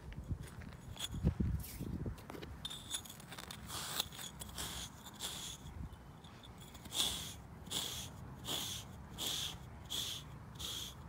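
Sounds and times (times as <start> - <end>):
grooming block scraping horse coat: 2.6 - 5.7, 6.4 - 11.0.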